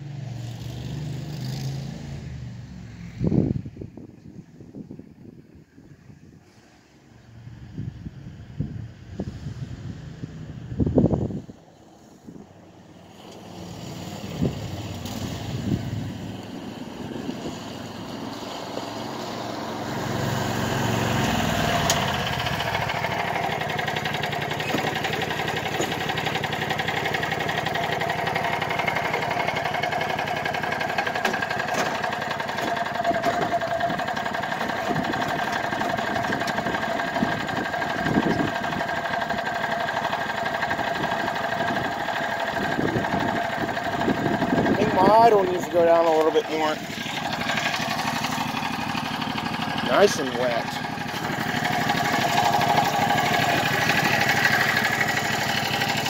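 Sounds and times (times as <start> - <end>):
utility vehicle engine idling: 10.4 - 56.0.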